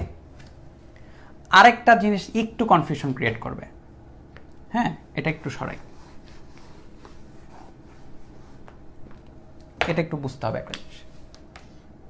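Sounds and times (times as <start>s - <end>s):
man speaking: 0.0s - 0.2s, 1.5s - 3.8s, 4.7s - 5.9s, 9.8s - 11.1s
duster scrubbing whiteboard: 5.5s - 8.9s.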